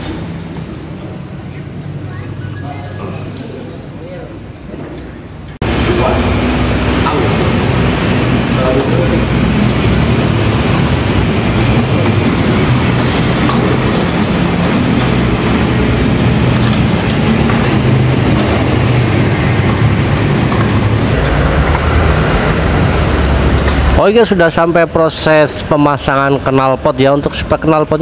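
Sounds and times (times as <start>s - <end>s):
machinery rumble and hum: 0.0s - 25.5s.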